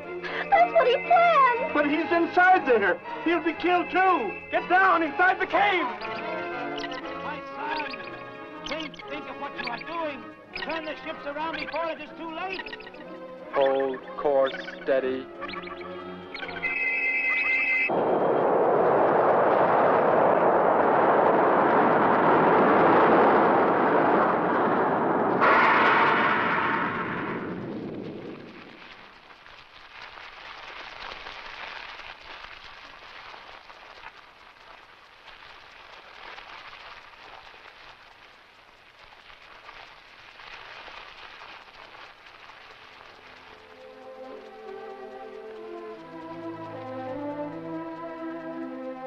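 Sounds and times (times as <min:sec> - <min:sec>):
film music: 0:00.0 - 0:29.1, 0:43.2 - 0:49.0
long explosion: 0:17.9 - 0:29.3.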